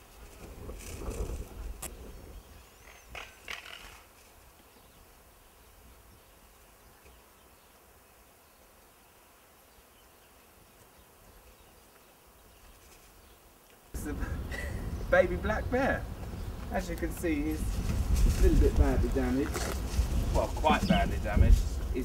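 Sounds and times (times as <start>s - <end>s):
faint outdoor background: 0.0s - 22.0s.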